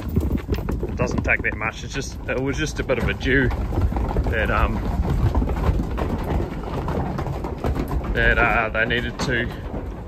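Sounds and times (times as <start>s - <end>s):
hooves clattering on wooden floors: 0.0s - 10.0s.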